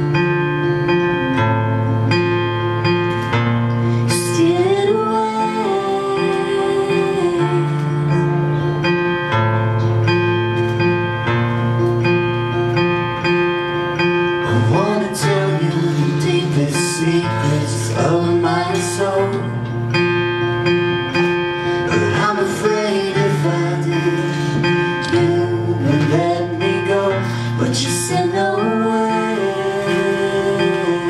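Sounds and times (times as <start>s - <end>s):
acoustic guitar chords: 0.0s - 31.0s
woman singing: 4.1s - 8.5s, 14.5s - 19.7s, 21.9s - 31.0s.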